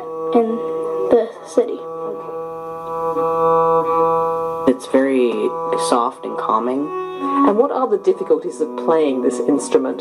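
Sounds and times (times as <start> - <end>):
bowed viola da gamba: 0.0 - 10.0.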